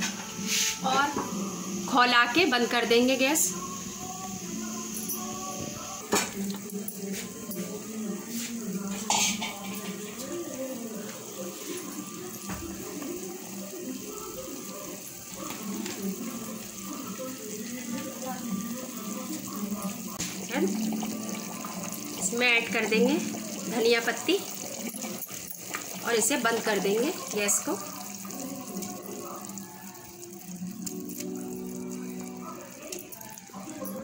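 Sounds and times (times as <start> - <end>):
gravy boiling in a pot: 0.1 - 34.0.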